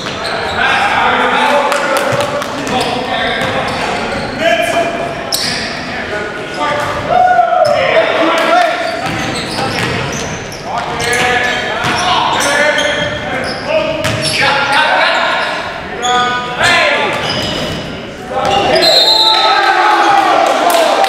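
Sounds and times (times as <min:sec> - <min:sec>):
sneakers squeaking: 0:00.0 - 0:19.7
players calling out: 0:00.0 - 0:21.0
basketball bouncing: 0:02.0 - 0:03.7, 0:09.0 - 0:10.2, 0:14.0 - 0:14.3.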